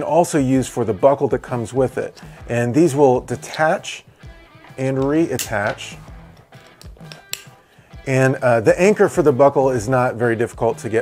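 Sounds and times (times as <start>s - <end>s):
soft background music: 0.0s - 11.0s
plastic clip snapping: 5.0s - 5.9s, 6.6s - 7.6s.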